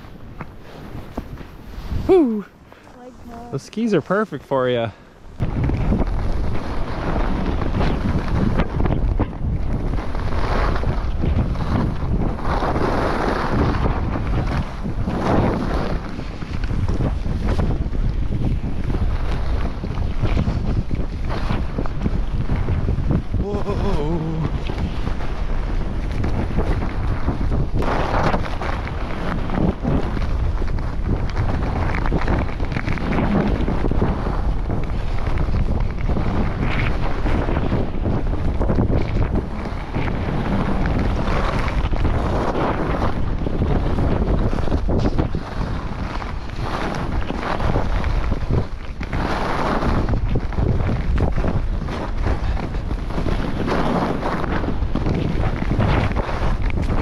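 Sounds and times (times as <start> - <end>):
skis scraping over snow: 0.0 - 5.0, 5.6 - 57.0
wind buffeting microphone: 0.0 - 57.0.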